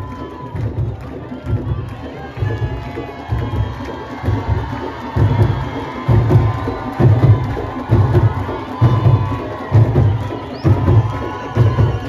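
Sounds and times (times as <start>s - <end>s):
crowd cheering: 0.0s - 12.0s
drum ensemble playing deep beat: 0.0s - 12.0s.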